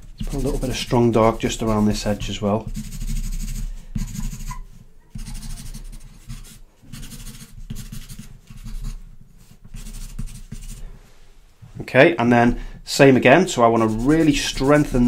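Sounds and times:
charcoal pencil scratching on paper: 0:00.0 - 0:10.8, 0:13.6 - 0:15.0.

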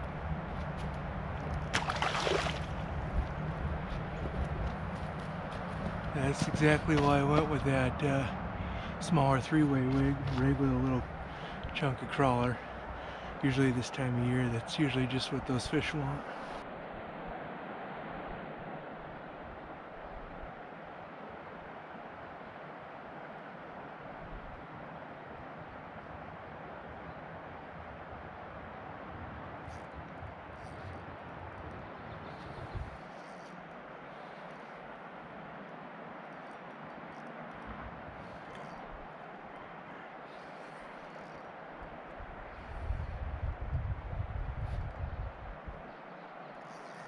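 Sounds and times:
outdoor ambient rush: 0:00.0 - 0:47.0.

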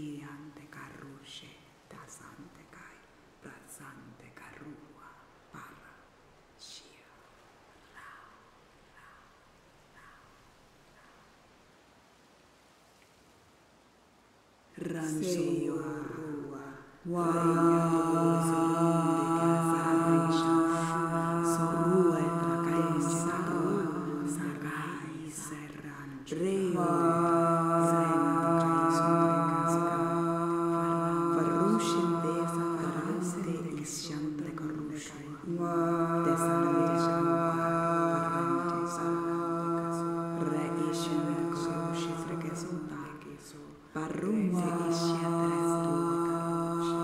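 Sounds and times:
person chanting long tone: 0:14.8 - 0:47.0.

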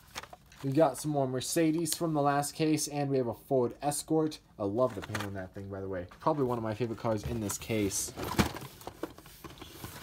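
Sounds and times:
packaging rustling: 0:00.0 - 0:01.1.

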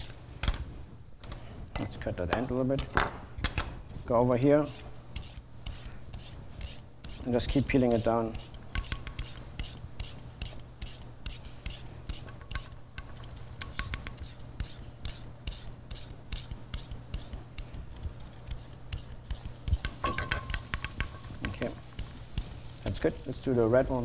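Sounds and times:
vegetable peeler scraping carrot: 0:04.3 - 0:13.5, 0:14.1 - 0:20.1.

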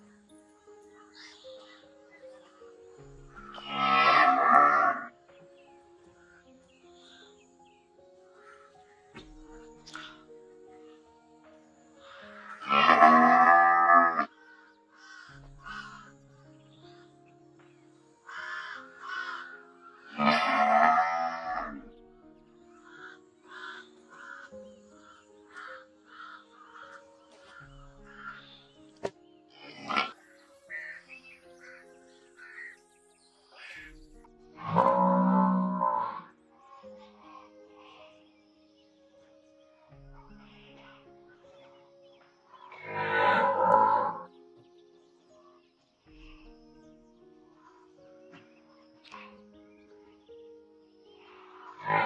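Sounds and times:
background music: 0:00.0 - 0:52.0
cattle mooing: 0:03.5 - 0:05.1, 0:12.5 - 0:14.3, 0:20.1 - 0:21.8, 0:34.6 - 0:36.3, 0:42.7 - 0:44.3, 0:51.8 - 0:52.0.

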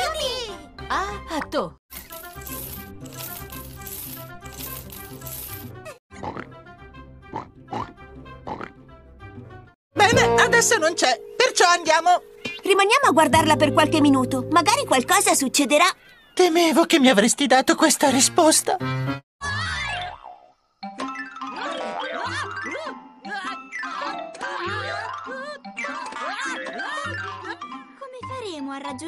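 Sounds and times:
soft music: 0:00.0 - 0:05.9, 0:10.0 - 0:15.8
children's cartoon music: 0:00.0 - 0:15.9, 0:20.8 - 0:29.0
cartoon pig oinking: 0:06.2 - 0:06.5, 0:07.3 - 0:08.7.

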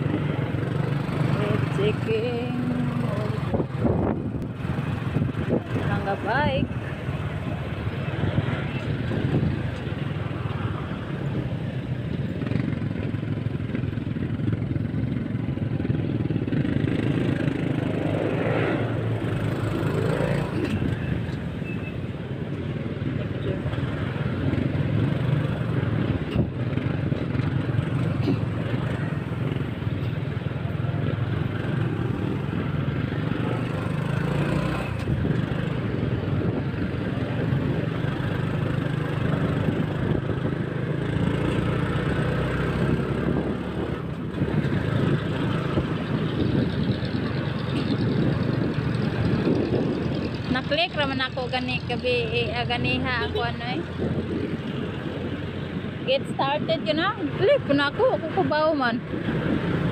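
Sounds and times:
motorcycle engine and road noise: 0:00.0 - 0:59.9
voices: 0:01.2 - 0:03.7, 0:05.5 - 0:07.3, 0:50.4 - 0:54.0, 0:56.0 - 0:59.1.

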